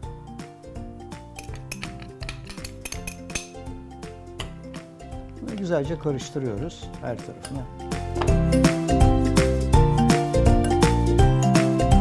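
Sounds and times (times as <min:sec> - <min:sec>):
background music: 0:00.0 - 0:12.0
metal spoon scraping glass bowl: 0:01.4 - 0:03.6.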